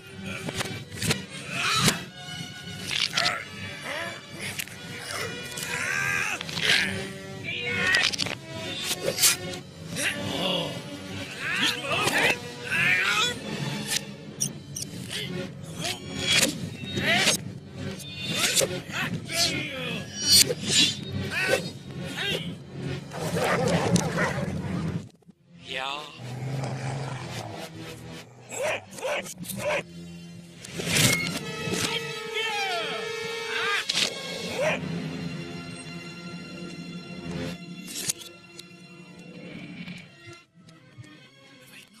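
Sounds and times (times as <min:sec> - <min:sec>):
reversed orchestral soundtrack: 0:00.0 - 0:42.0.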